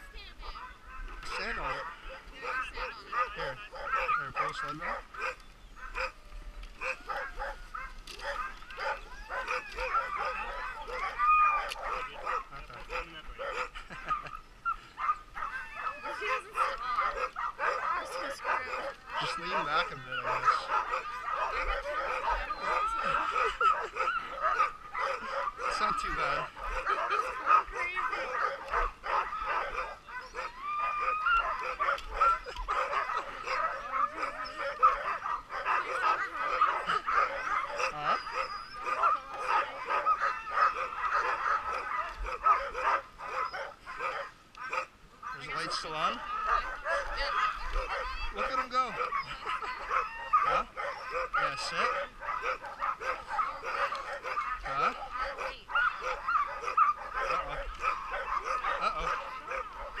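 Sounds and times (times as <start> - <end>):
dogs barking and yipping: 0.0 - 60.0.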